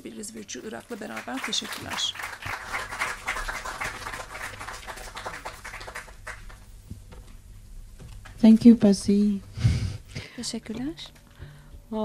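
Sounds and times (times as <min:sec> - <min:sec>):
audience applauding: 0:00.6 - 0:06.7.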